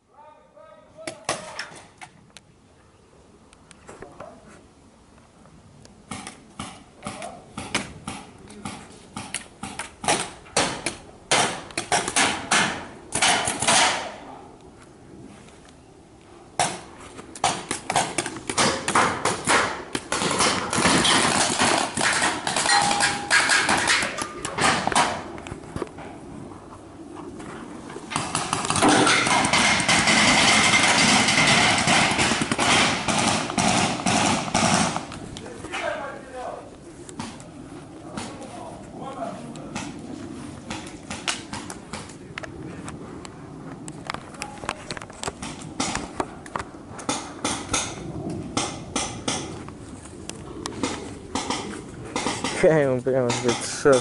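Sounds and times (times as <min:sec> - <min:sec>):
paintball markers firing: 0:28.1 - 0:35.3.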